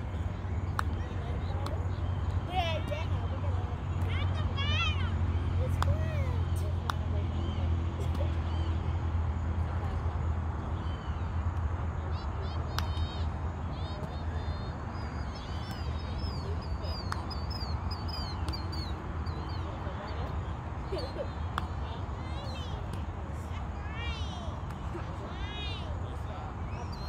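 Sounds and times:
birds chirping: 13.8s - 22.8s.

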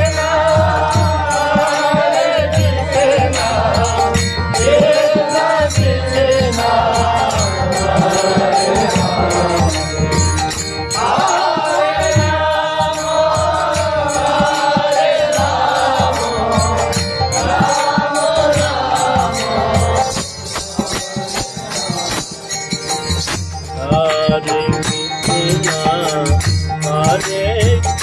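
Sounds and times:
chanted devotional melody: 0.0s - 28.0s
harmonium: 0.0s - 28.0s.

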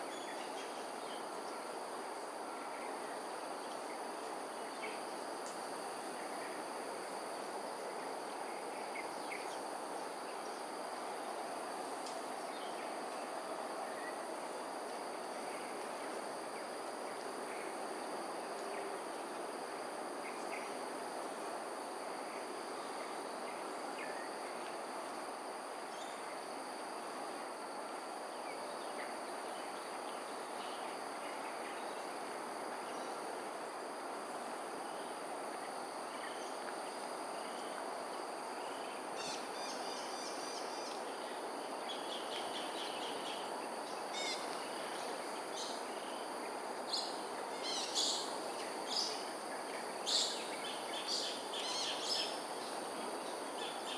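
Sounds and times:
constant low hiss: 0.0s - 53.9s.

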